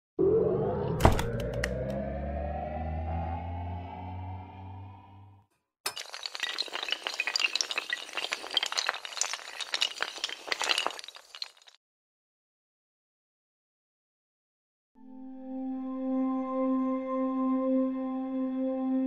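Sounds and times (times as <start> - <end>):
low hum: 0.2 - 5.4
rising synth tone: 0.2 - 5.4, 15.0 - 19.0
glass clattering and tinkling: 5.9 - 11.8.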